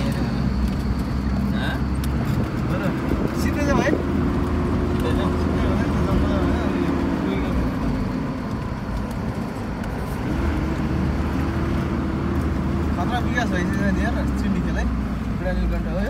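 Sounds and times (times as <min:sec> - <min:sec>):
car engine rumble: 0:00.0 - 0:16.0
road noise: 0:00.0 - 0:16.0.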